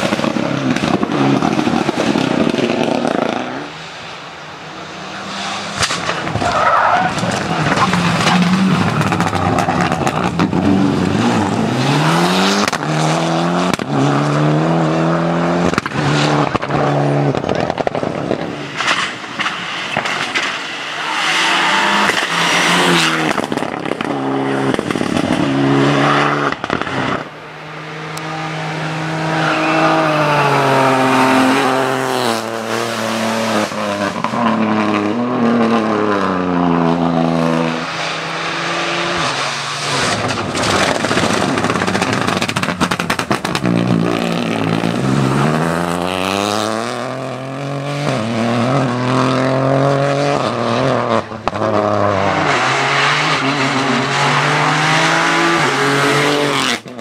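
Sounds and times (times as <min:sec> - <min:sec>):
rally car engines revving: 0:00.0 - 0:57.0
sharp cracks: 0:05.7 - 0:10.5.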